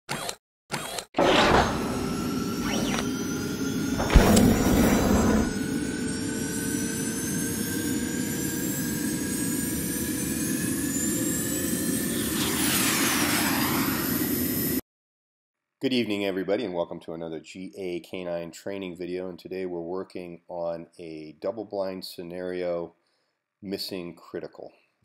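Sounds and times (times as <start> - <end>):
rising drone: 1.6 - 8.4, 9.0 - 14.8
sharp hit: 4.0 - 5.8
sweeping whoosh: 11.8 - 14.8.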